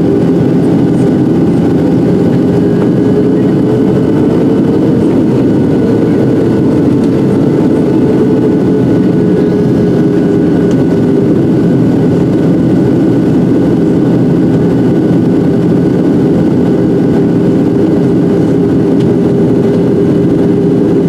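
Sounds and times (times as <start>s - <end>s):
aircraft cabin engine drone: 0.0s - 21.0s
airflow noise: 0.0s - 21.0s
steady humming tones: 0.0s - 21.0s.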